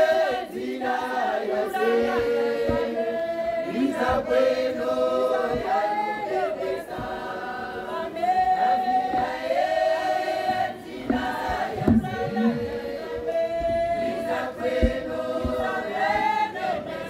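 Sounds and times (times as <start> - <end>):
women singing in harmony: 0.0 - 17.0.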